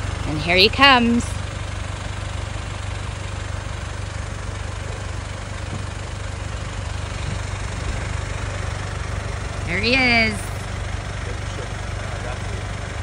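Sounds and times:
car engine idling: 0.0s - 13.0s.

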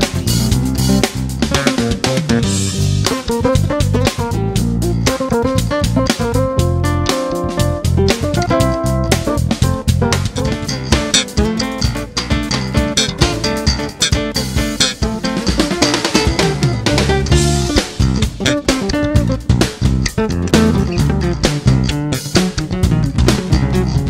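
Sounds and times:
guitar bass and drums trio: 0.0s - 24.0s.

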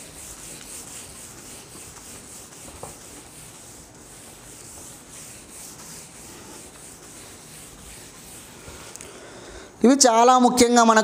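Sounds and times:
cloth wiping whiteboard: 0.0s - 9.0s.

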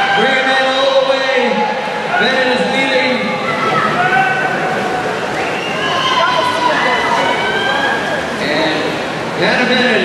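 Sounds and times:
crowd cheering and screaming: 0.0s - 8.6s.

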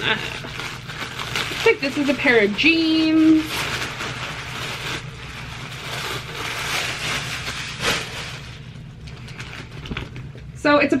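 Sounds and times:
fabric shaken open: 0.0s - 10.4s
plastic bag rustling and crinkling: 0.0s - 10.6s.

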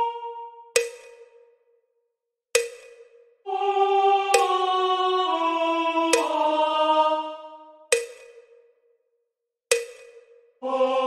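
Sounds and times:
sharp metronome clicks: 0.0s - 1.5s, 2.6s - 3.2s, 4.3s - 4.5s, 6.1s - 6.4s, 7.9s - 8.6s, 9.7s - 10.4s.

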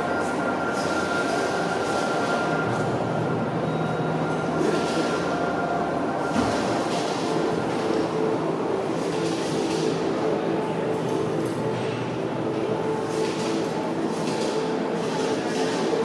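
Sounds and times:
exhibition hall rumbling ambience: 0.0s - 16.0s.

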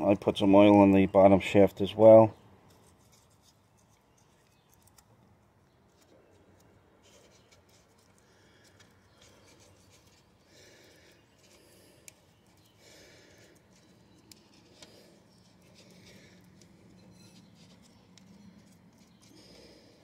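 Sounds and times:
soft brush strokes: 2.0s - 20.0s.

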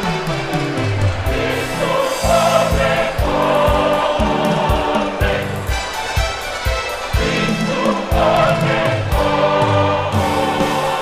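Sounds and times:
instrumental accompaniment: 0.0s - 11.0s
low drum beats: 0.0s - 11.0s
choir singing gospel song: 1.2s - 11.0s.

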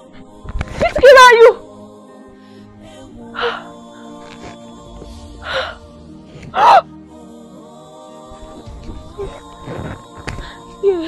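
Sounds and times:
background music with held tones: 0.0s - 11.0s.

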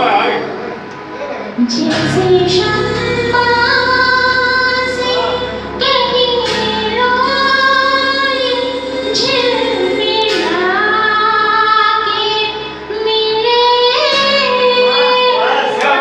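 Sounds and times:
karaoke backing track: 0.0s - 16.0s
woman singing into microphone: 1.6s - 16.0s.

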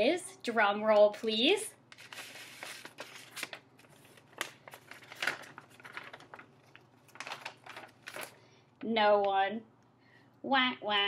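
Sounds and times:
paper crinkling and rustling: 0.9s - 8.4s.

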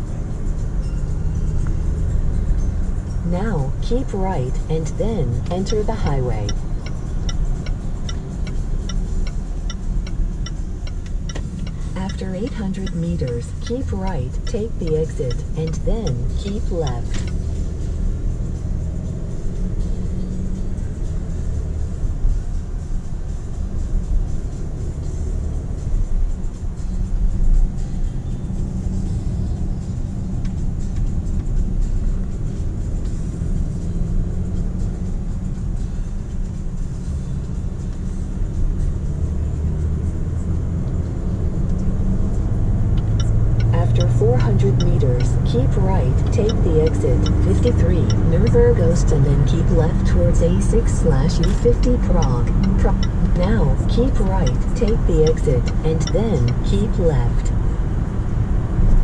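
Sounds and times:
car engine and road rumble: 0.0s - 59.0s
voices: 3.3s - 6.6s, 11.9s - 17.3s, 43.7s - 57.5s.

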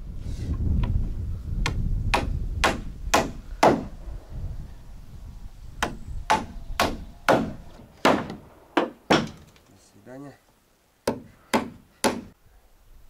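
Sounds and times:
hammer blows on timber: 1.6s - 4.0s, 5.8s - 9.4s, 11.1s - 12.4s.

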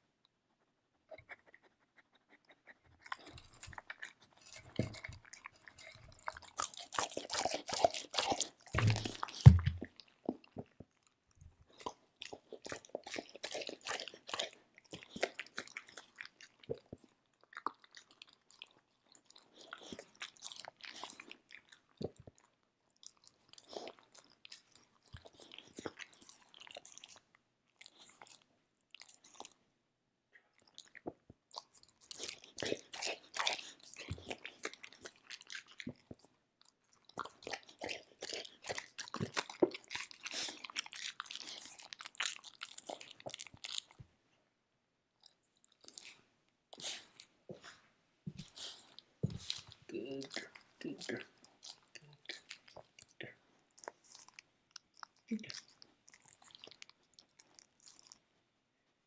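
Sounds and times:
dog crunching dry kibble: 2.9s - 29.6s, 30.6s - 44.0s, 48.4s - 58.2s.

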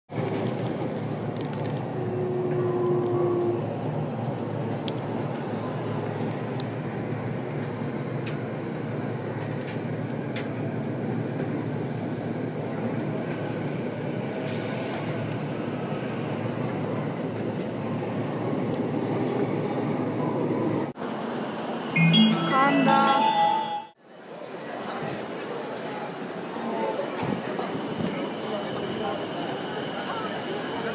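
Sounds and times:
train rumbling on rails: 0.1s - 21.9s.

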